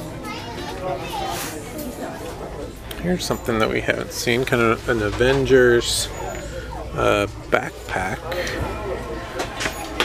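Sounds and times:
children's voices: 0.0 - 2.3
indistinct shoppers talking: 0.0 - 10.0.

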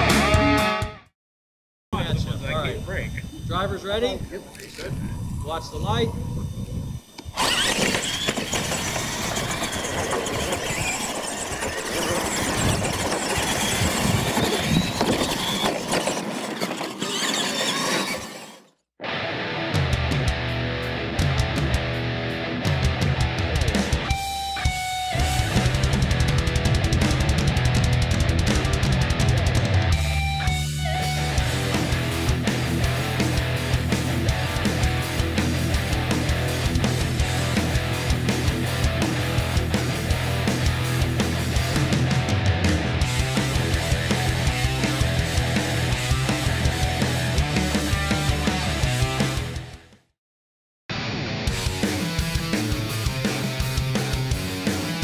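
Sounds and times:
loud rock music: 0.0 - 1.1, 19.0 - 50.1, 50.9 - 55.0
radio-controlled trucks racing: 7.2 - 18.7.

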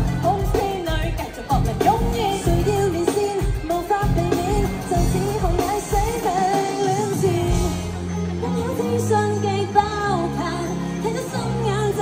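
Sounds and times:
bass beat: 0.0 - 3.0
women singing pop over a band: 0.0 - 12.0.

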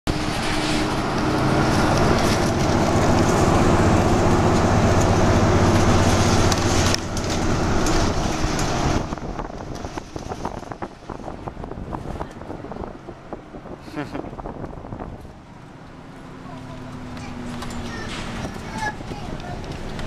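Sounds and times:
bus engine and road rumble: 0.1 - 20.0.

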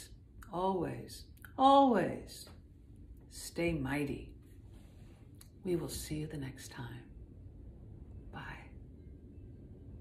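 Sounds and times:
low room rumble: 0.0 - 10.0
woman whispering: 8.3 - 8.9.

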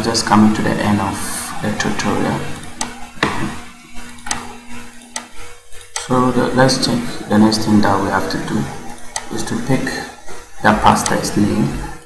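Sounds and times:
steady low hum: 0.0 - 12.0
computer mouse clicks: 2.6 - 6.1.

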